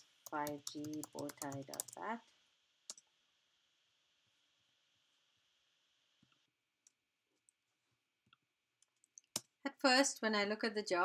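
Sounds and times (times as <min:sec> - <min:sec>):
computer keyboard keystrokes: 0:00.3 - 0:02.0.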